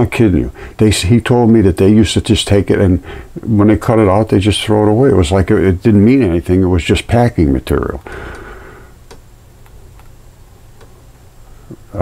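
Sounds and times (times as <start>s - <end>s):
low steady hum: 0.0s - 12.0s
faint clicks: 8.0s - 10.2s, 10.8s - 11.0s.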